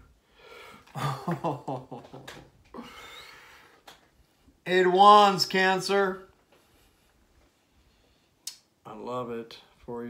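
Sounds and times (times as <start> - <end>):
man laughing: 0.9 - 3.1.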